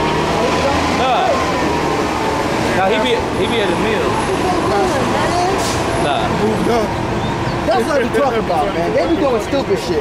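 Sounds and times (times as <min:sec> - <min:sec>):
city street traffic: 0:00.0 - 0:10.0
people talking: 0:00.3 - 0:01.5, 0:02.6 - 0:07.0, 0:07.6 - 0:10.0.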